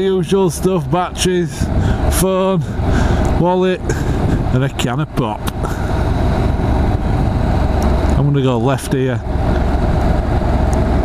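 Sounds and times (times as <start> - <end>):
motorcycle engine drone: 0.0 - 11.0
wind rush over microphone: 1.4 - 8.2.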